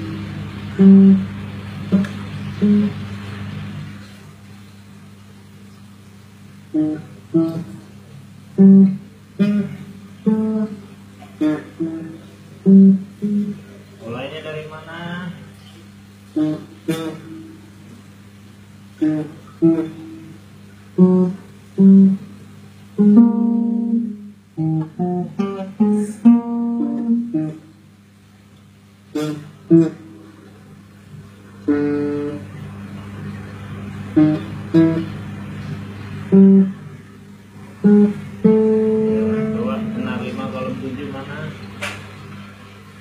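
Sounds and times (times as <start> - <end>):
acoustic guitar plucking and strumming: 0.0 - 4.4, 6.7 - 14.3, 15.2 - 18.0, 18.9 - 27.9, 29.1 - 42.5
steady low hum: 0.0 - 43.0.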